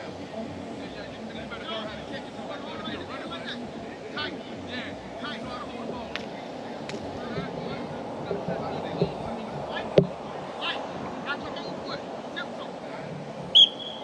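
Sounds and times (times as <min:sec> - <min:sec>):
distant voices: 0:00.0 - 0:14.0
whistle blast: 0:13.5 - 0:14.0.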